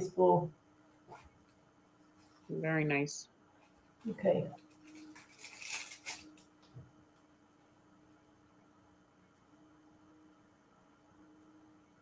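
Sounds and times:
plastic bag crinkling: 4.0s - 6.6s.

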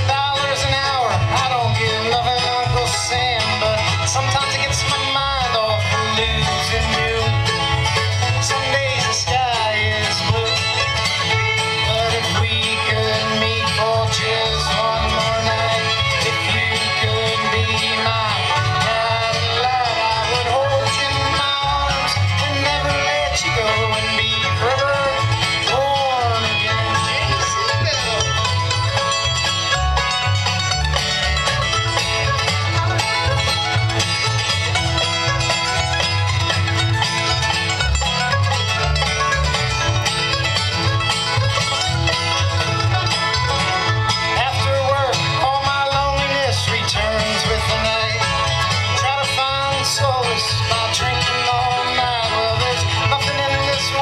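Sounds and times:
acoustic guitar: 0.0s - 54.0s
banjo: 0.0s - 54.0s
fiddle: 0.0s - 54.0s
mandolin: 0.0s - 54.0s
upright bass: 0.0s - 54.0s.

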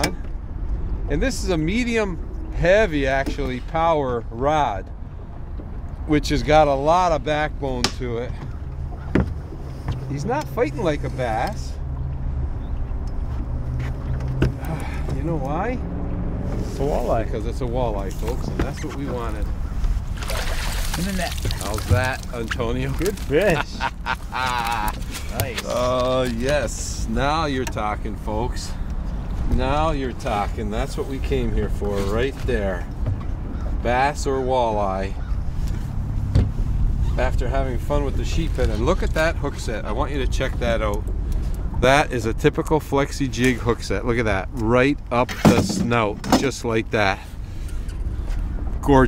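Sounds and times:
steady low rumble: 0.0s - 9.7s.

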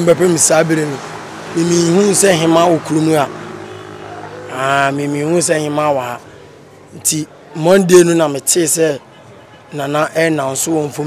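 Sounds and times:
man speaking into microphone: 0.0s - 3.5s, 4.2s - 6.3s, 6.9s - 9.0s, 9.7s - 11.0s.

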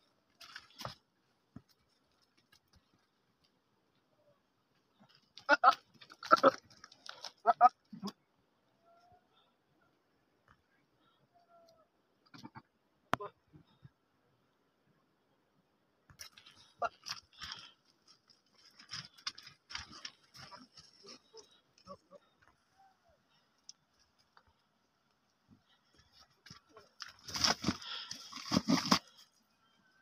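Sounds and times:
goat calling: 7.4s - 8.2s
goat hooves scuffing on stones: 16.2s - 21.4s, 25.9s - 29.3s.

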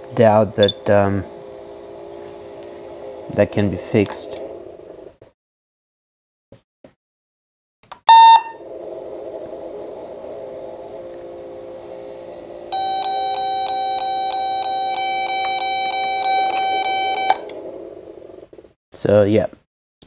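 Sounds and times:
low steady hum: 0.0s - 5.2s, 8.1s - 18.5s
fast repeating alarm beeps: 8.1s - 8.6s, 12.7s - 17.4s
patient monitor beep: 8.1s - 8.6s, 12.7s - 17.5s.

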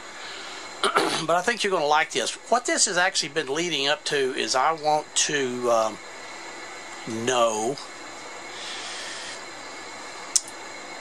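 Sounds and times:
workshop room hiss: 0.0s - 11.0s.

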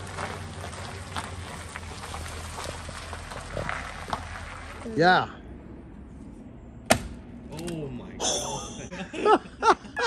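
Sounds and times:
tyres crunching on gravel: 0.0s - 5.3s.

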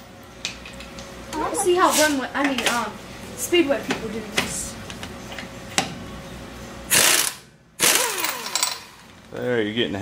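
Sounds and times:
pneumatic impact wrench bursts: 6.9s - 9.1s.

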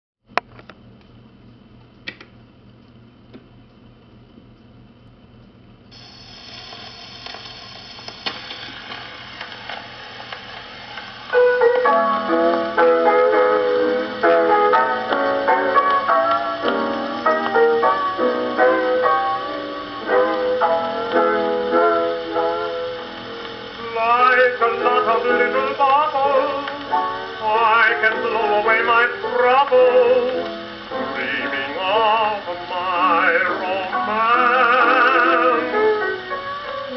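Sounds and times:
record surface hiss: 0.2s - 36.9s
piano music from phonograph: 5.9s - 36.9s.

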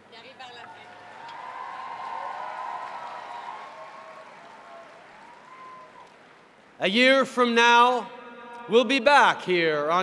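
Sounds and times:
crowd cheering: 0.5s - 6.5s
crowd applauding: 0.6s - 6.5s.

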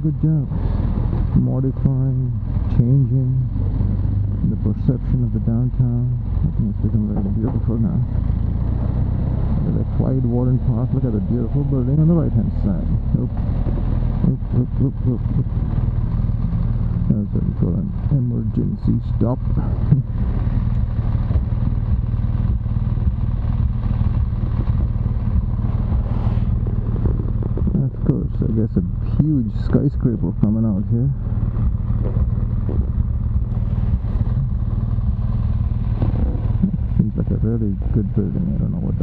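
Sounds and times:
motorcycle engine droning: 0.0s - 39.0s
road and wind noise: 0.0s - 39.0s.

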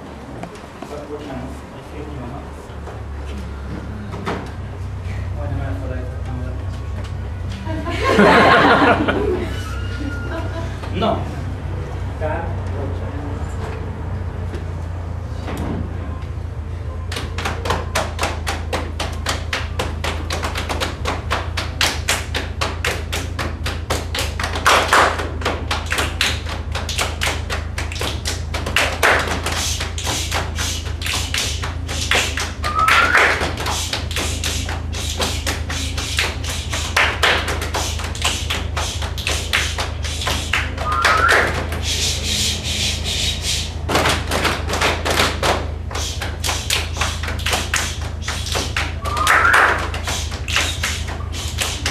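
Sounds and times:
children clapping and body slapping: 17.1s - 51.9s
rising vocal call: 40.8s - 43.8s, 49.0s - 49.9s.

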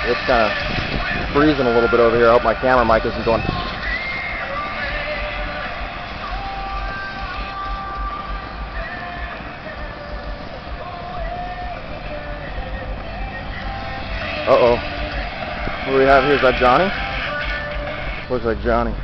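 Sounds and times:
rock music from car stereo: 0.0s - 19.0s
wind on microphone: 0.0s - 19.0s.

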